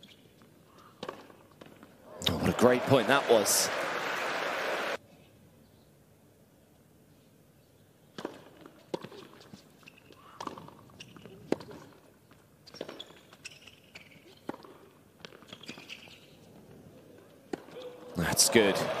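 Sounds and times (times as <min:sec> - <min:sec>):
tennis ball bounces: 0:01.0 - 0:01.8, 0:08.1 - 0:09.5, 0:10.4 - 0:12.0, 0:14.0 - 0:16.0.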